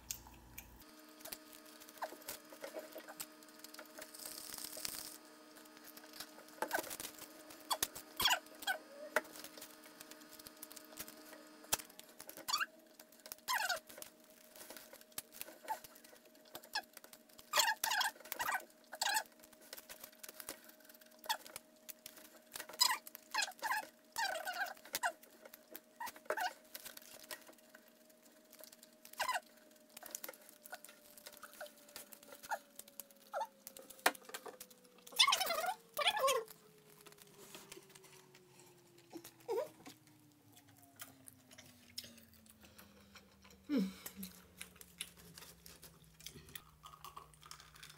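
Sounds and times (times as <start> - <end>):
faint steady hum: 0.0 - 47.9
wet chewing and mouth clicks: 0.0 - 47.9.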